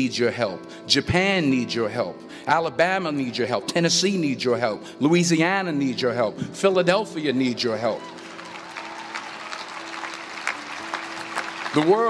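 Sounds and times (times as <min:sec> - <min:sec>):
audience applauding and cheering: 0:07.8 - 0:12.0.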